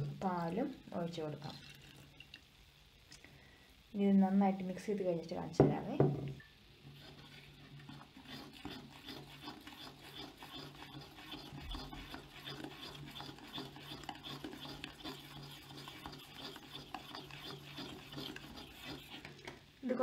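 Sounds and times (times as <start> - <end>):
metal spoon scraping a pot: 6.8 - 19.5.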